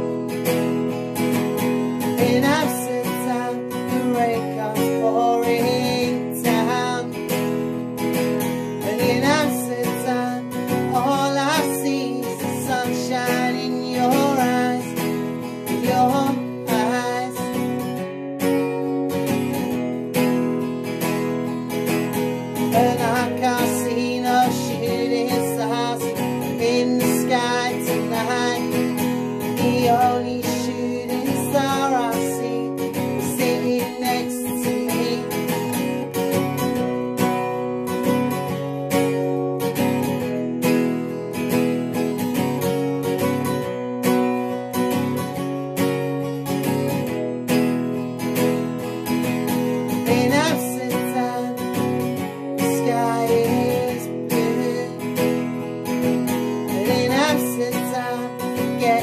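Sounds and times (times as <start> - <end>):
man singing: 0.0 - 45.9, 46.6 - 59.0
strummed acoustic guitar: 0.0 - 59.0.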